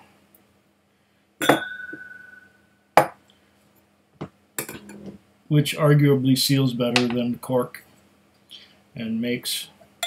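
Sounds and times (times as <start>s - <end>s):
glass strike ringing: 1.4s - 3.2s.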